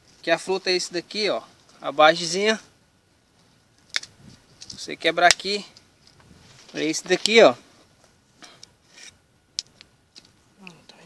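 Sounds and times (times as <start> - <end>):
knife scraping seed pod: 8.8 - 9.2.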